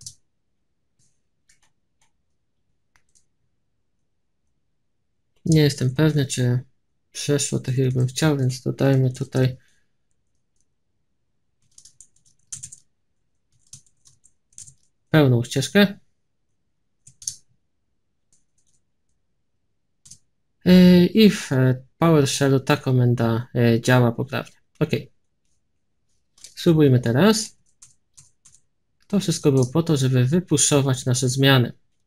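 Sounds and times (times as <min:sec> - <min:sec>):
computer keyboard clicks: 0:01.5 - 0:02.2, 0:02.9 - 0:03.3, 0:11.6 - 0:12.9, 0:13.5 - 0:14.9, 0:17.0 - 0:17.5, 0:18.3 - 0:18.8, 0:27.6 - 0:29.8.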